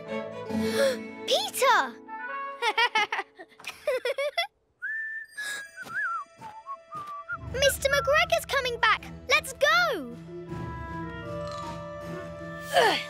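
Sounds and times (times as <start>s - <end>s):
background music: 0.0s - 3.8s, 5.8s - 13.0s
descending whistle: 4.8s - 8.1s.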